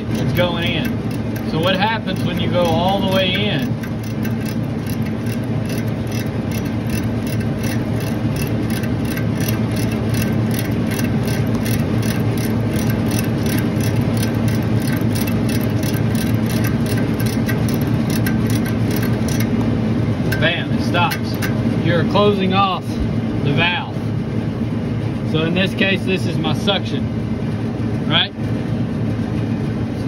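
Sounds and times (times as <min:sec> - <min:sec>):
ratchet wrench clicking: 0:00.0 - 0:19.6, 0:20.3 - 0:21.6
machinery hum: 0:00.0 - 0:30.0.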